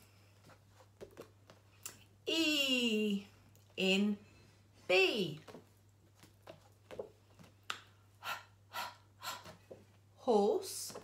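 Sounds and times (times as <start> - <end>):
woman making breathy h sounds: 8.2 - 9.6.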